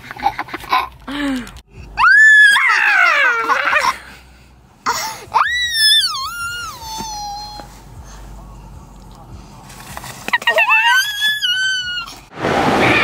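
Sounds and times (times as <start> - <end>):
toddler squealing playfully: 5.4 - 7.7, 10.4 - 12.2.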